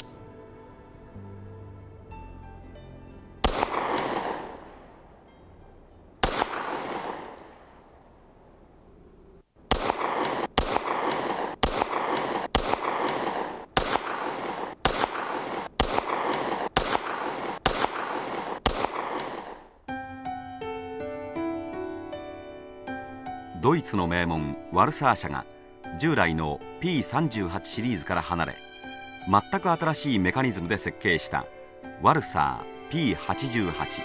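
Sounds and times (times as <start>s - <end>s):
pistol shots with echo: 3.4s - 5.0s, 6.2s - 7.8s, 9.7s - 19.7s.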